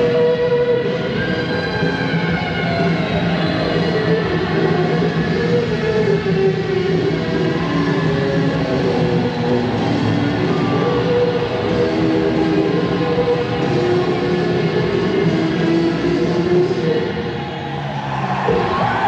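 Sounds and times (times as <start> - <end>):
live rock band playing: 0.0 - 17.3.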